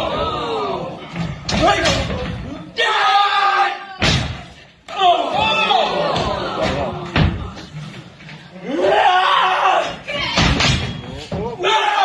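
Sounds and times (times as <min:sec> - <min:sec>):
thuds: 0:04.0 - 0:04.6.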